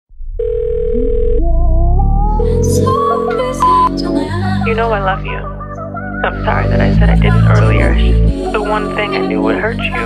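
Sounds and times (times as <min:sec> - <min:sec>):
rising melodic line: 0:00.8 - 0:05.6, 0:06.2 - 0:10.0
telephone beep: 0:03.2 - 0:04.0.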